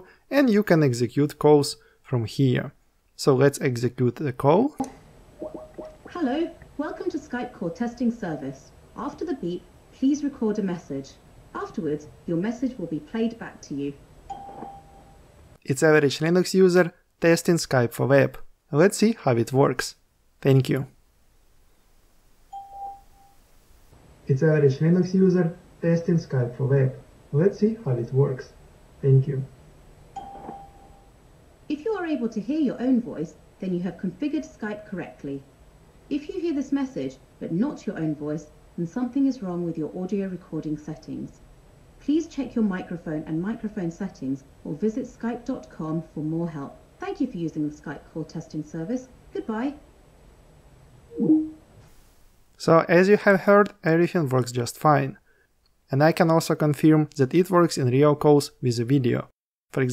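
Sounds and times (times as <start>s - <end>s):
electronic beep: 14.3s - 15.2s, 30.2s - 31.1s.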